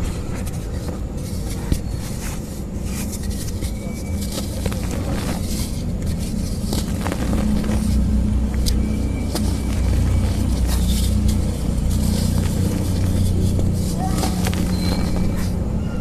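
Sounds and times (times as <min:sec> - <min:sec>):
low engine-like hum: 0:00.0 - 0:16.0
light crackles and clicks: 0:00.3 - 0:15.7.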